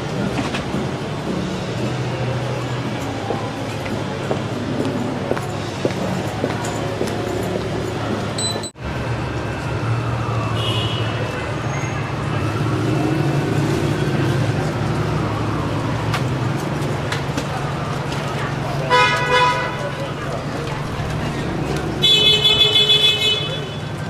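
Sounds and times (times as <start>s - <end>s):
traffic engine rumble: 0.0s - 24.0s
car horn honking: 18.9s - 20.0s, 22.0s - 24.0s.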